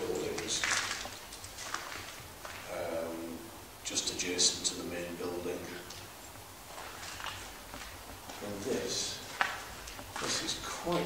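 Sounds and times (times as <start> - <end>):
scuffing and rustling: 0.0 - 2.8, 5.6 - 11.0.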